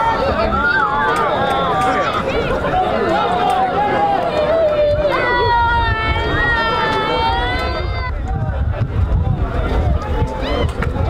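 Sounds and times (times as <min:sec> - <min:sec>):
voices calling out: 0:00.0 - 0:08.8.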